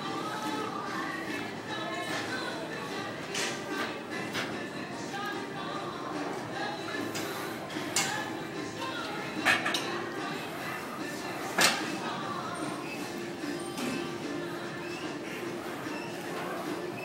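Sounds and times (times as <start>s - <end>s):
gym music: 0.0s - 17.0s.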